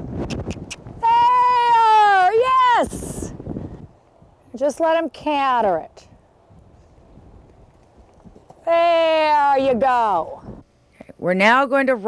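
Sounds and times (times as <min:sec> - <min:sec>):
woman shouting a long call: 0:01.0 - 0:03.3, 0:08.7 - 0:10.4.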